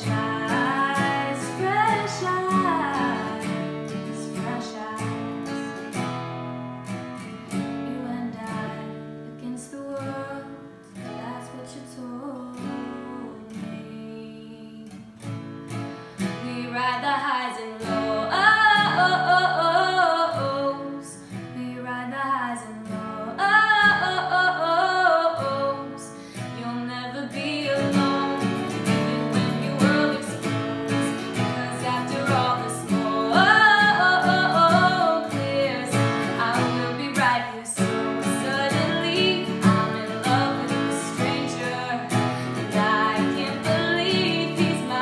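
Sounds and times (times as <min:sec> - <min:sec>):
woman singing: 0:00.0 - 0:06.1, 0:07.2 - 0:45.0
strummed acoustic guitar: 0:00.0 - 0:45.0.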